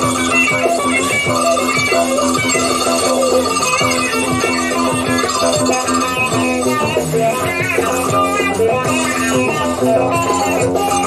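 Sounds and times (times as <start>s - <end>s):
progressive rock guitar and bass: 0.0s - 11.0s.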